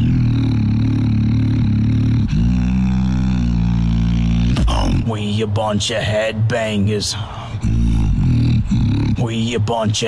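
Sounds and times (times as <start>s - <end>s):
beatboxed deep buzzing bass: 0.0s - 10.0s.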